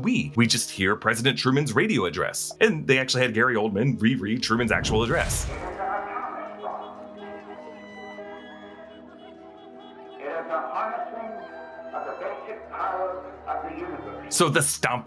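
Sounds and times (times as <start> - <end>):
man speaking: 0.0 - 6.9, 10.2 - 15.0
music with sustained tones: 5.8 - 14.5.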